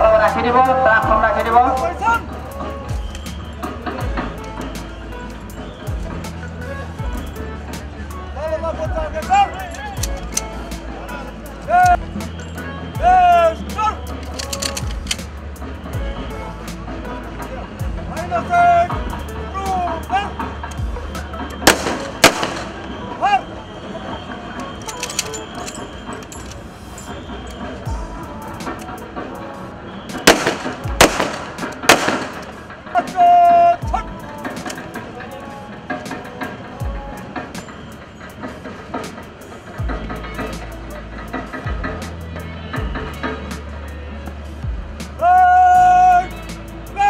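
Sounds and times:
background music: 0.0 - 47.0
rifle shots with echo: 21.6 - 23.0, 30.2 - 32.7
loud drawn-out voice call: 45.2 - 47.0.

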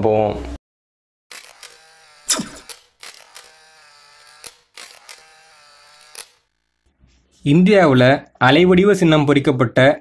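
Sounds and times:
sharp clicks: 1.4 - 3.5.

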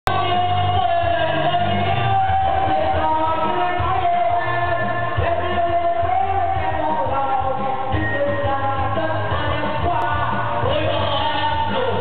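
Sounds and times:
amplified backing track: 0.0 - 12.0
man singing karaoke: 0.0 - 12.0.

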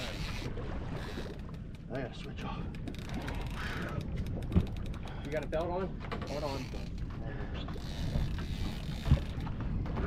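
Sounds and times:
boat engine rumble: 0.0 - 10.0.

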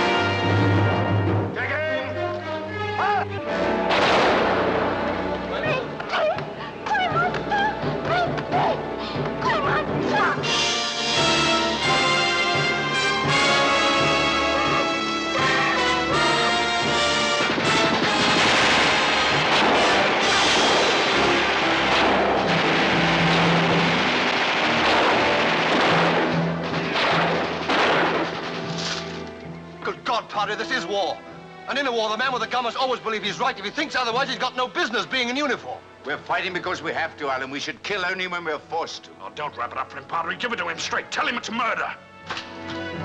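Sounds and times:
dramatic orchestral music: 0.0 - 37.4, 38.2 - 43.0
gunfire: 3.8 - 5.1, 15.4 - 29.2
rifle volley: 3.8 - 6.2, 14.6 - 29.4
explosions: 3.9 - 5.1, 17.0 - 29.2.

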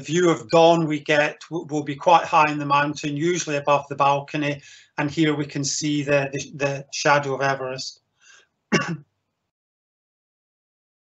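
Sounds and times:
man coughing: 8.7 - 9.0.

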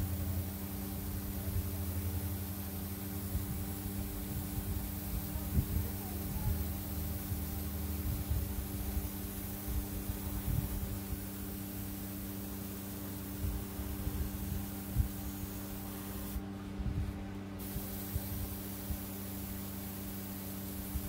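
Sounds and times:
airbrush spraying hiss: 0.0 - 16.4, 17.0 - 21.0
steady low hum: 0.0 - 21.0.

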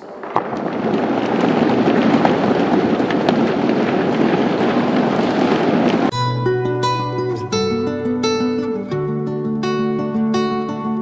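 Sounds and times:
audience applauding: 0.0 - 6.1
acoustic guitar music: 6.1 - 11.0.

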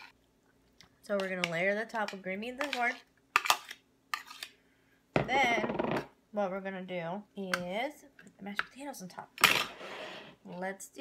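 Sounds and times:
spoon scraping through vegetables: 1.1 - 4.6.

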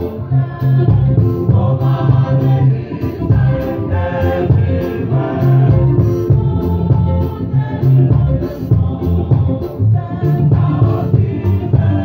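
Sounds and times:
choir singing gospel: 0.0 - 12.0.

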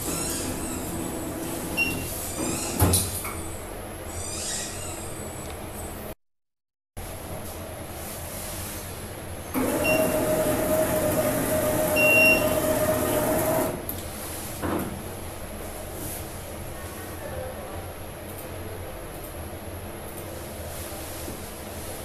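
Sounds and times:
printer drive whining and rattling: 0.0 - 2.9, 9.5 - 14.0.

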